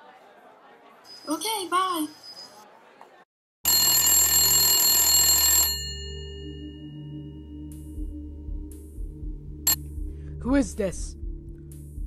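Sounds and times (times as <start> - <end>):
telephone ringing: 3.6 - 7.2.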